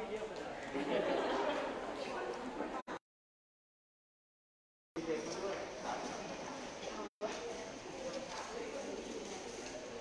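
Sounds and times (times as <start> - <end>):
indistinct voices in a hall: 0.0 - 3.0, 5.0 - 10.0.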